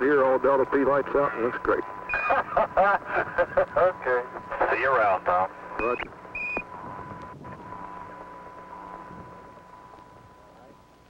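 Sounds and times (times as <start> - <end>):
radio channel hiss: 0.0 - 11.0.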